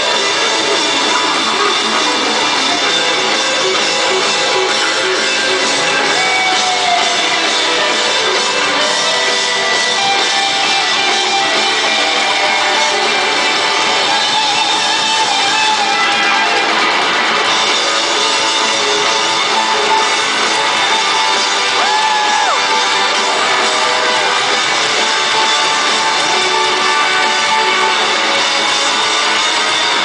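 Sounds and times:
live rock music: 0.0s - 30.0s.

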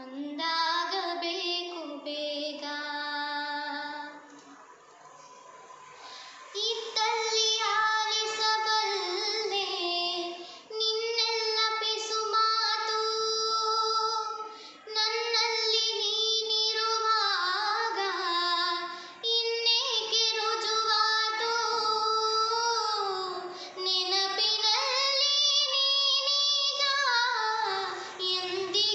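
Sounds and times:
girl singing: 0.0s - 4.4s, 6.0s - 28.9s.

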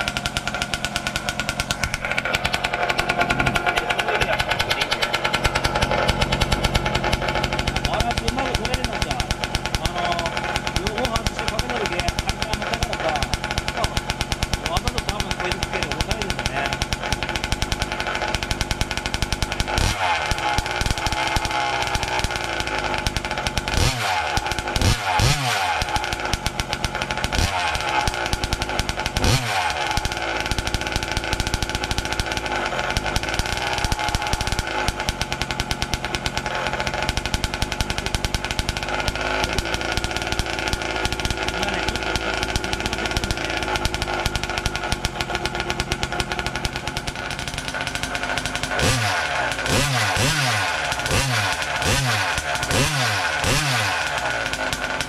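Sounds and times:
small two-stroke engine revving: 0.0s - 55.0s.

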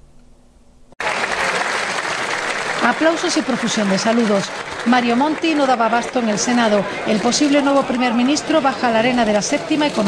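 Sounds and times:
chamber full of people applauding: 1.0s - 10.0s.

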